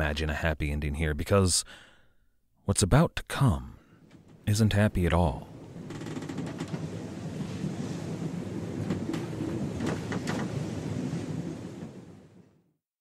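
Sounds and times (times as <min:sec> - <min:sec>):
ocean surf and wind: 0:04.0 - 0:12.6.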